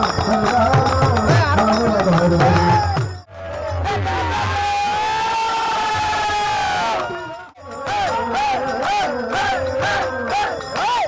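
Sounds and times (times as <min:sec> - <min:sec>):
man singing long high note: 0:00.0 - 0:11.0.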